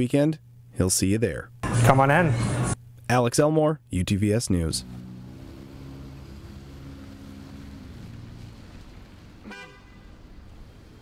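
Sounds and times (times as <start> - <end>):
vehicle engine humming: 1.6 - 3.0, 4.0 - 11.0
horn toot: 9.4 - 10.4.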